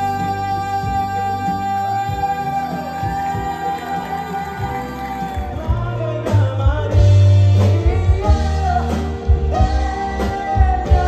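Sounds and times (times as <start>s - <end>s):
band accompaniment: 0.0s - 11.0s
heavy bass and drum beat: 0.0s - 11.0s
man singing long notes: 0.0s - 11.0s.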